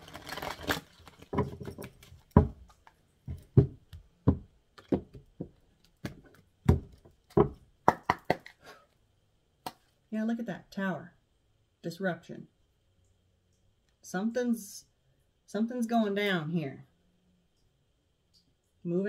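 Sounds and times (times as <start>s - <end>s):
cards rustling: 0.0s - 3.0s.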